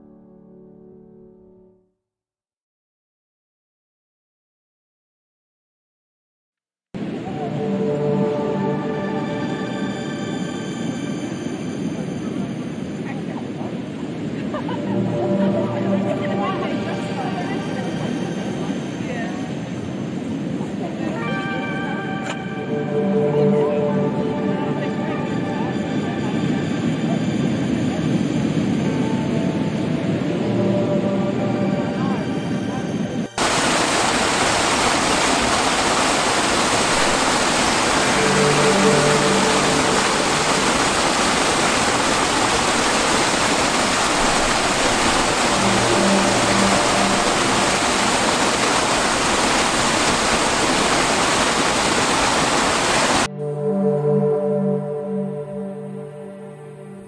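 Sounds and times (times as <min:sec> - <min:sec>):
soft background music: 0:07.0 - 0:12.1, 0:14.5 - 0:18.0, 0:20.8 - 0:27.1, 0:28.6 - 0:33.4, 0:38.0 - 0:41.4, 0:45.4 - 0:48.4, 0:53.3 - 0:57.0
waterfall rushing: 0:33.4 - 0:53.3.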